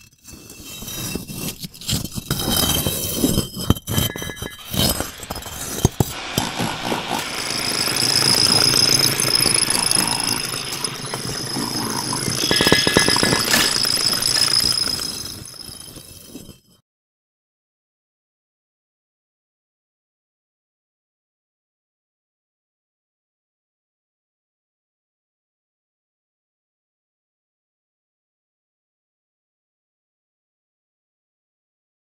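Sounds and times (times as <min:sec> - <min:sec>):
dense steady scraping: 0:00.2 - 0:16.6
sharp clinks and knocks: 0:01.5 - 0:16.4
high ringing tone: 0:03.9 - 0:16.4.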